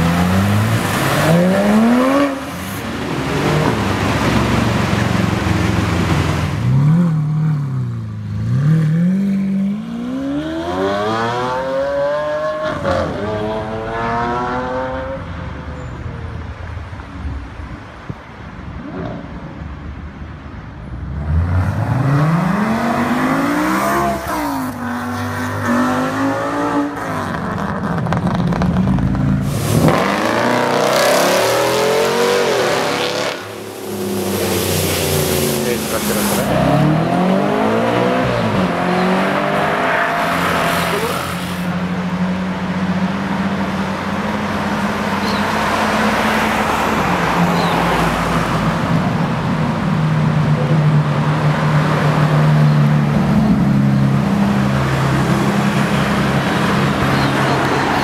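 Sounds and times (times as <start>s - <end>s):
car accelerating away: 21.1s - 41.4s
sports car engine revving: 29.4s - 45.8s.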